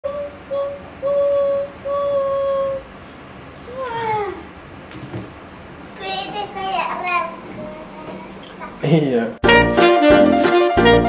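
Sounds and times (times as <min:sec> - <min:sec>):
child singing long notes: 0:00.0 - 0:02.9.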